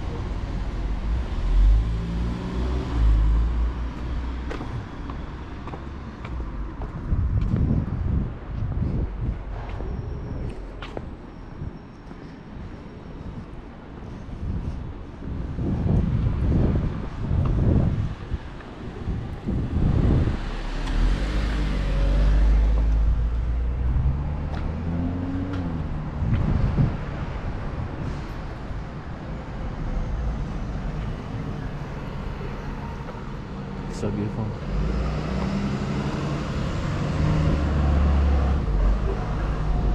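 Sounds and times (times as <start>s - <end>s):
low rumbling gusts: 0.0s - 11.8s, 12.7s - 39.9s
steady traffic noise: 0.0s - 39.9s
vehicle passing: 19.5s - 27.5s, 29.8s - 39.9s.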